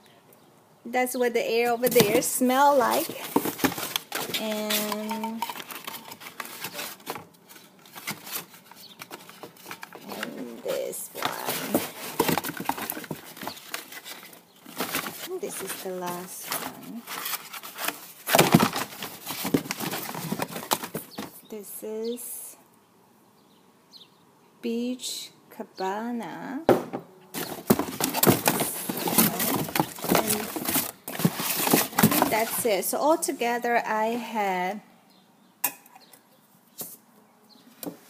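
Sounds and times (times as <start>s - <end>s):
packing paper crinkling: 1.9s - 21.3s, 27.4s - 32.7s.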